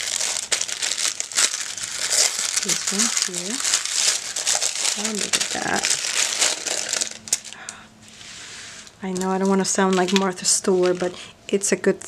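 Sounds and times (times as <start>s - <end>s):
plastic bag crinkling: 0.0s - 7.8s, 8.7s - 11.3s.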